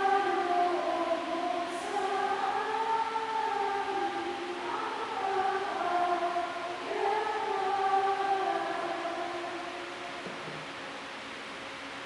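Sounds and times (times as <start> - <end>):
voices singing a slow hymn: 0.0 - 11.2.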